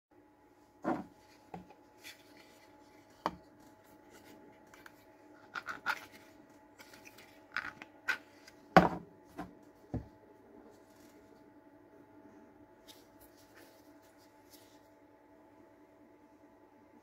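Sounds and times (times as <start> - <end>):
faint steady hum: 0.1 - 17.0.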